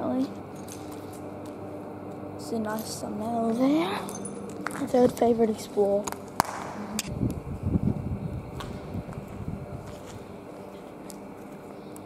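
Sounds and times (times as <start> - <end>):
footsteps on gritty concrete: 8.4 - 11.8.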